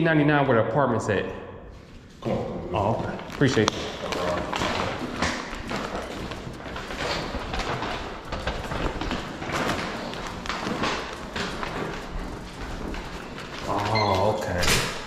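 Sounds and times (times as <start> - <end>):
footsteps on tiled floor: 1.7 - 15.0.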